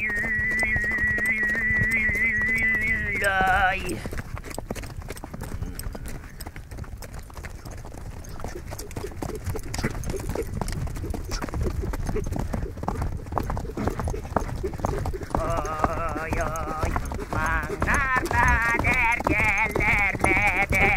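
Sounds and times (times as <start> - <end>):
horse hooves clip-clopping: 0.0 - 20.9.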